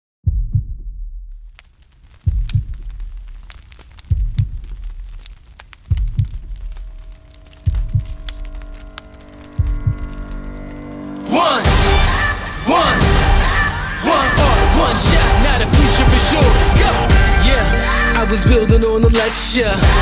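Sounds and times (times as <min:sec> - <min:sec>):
heartbeat double thump: 0:00.2 - 0:01.4, 0:02.3 - 0:03.1, 0:04.1 - 0:04.9, 0:05.9 - 0:06.6, 0:07.7 - 0:08.3, 0:09.6 - 0:10.2.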